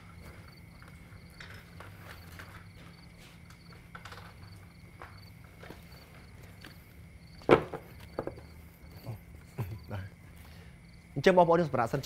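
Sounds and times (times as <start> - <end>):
insect chirping trills: 0.0 - 12.0
steady low hum: 0.0 - 12.0.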